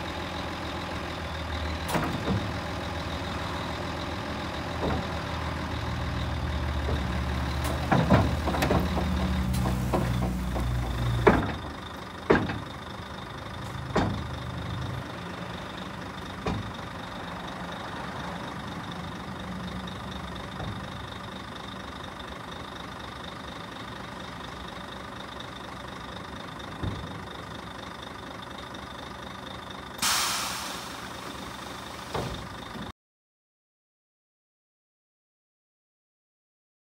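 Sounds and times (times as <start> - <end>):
truck engine idling: 0.0 - 32.9
dump body lowering: 1.7 - 3.6, 4.3 - 14.8, 30.0 - 32.9
loud air hiss: 30.0 - 32.2.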